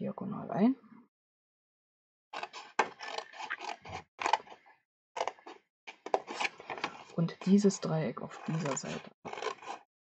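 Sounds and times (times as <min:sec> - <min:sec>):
scissors snipping card: 0:08.4 - 0:09.8.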